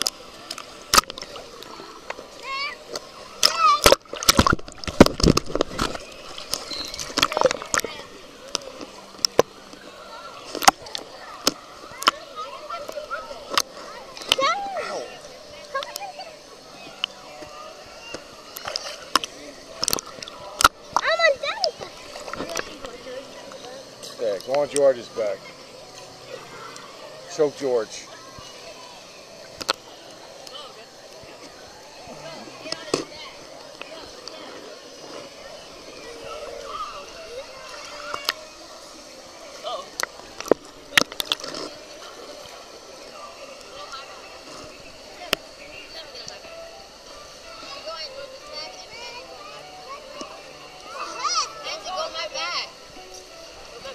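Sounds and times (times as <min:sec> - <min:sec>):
small water splashes: 0:00.0 - 0:16.0, 0:17.9 - 0:23.6
water lapping and sloshing: 0:00.0 - 0:30.4
faint children's voices: 0:00.0 - 0:53.9.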